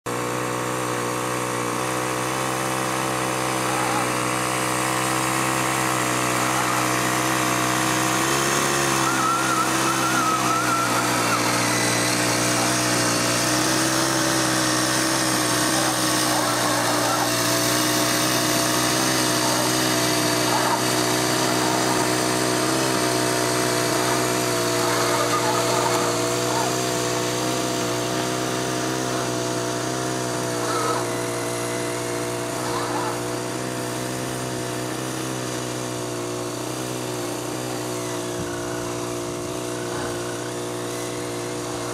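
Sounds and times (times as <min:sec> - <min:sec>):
small model engine running: 0:00.1 - 0:41.9.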